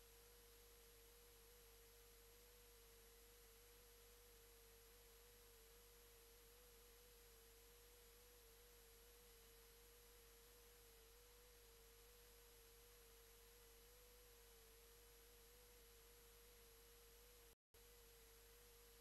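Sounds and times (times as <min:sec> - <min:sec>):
faint steady tone: 0:00.0 - 0:19.0.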